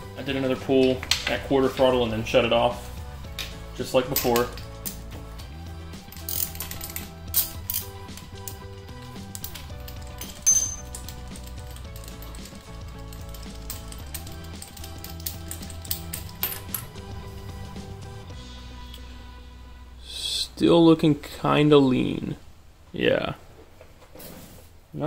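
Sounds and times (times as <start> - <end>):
background music: 0.0 - 22.7
ratchet wrench clicking: 6.1 - 8.6, 9.3 - 16.8.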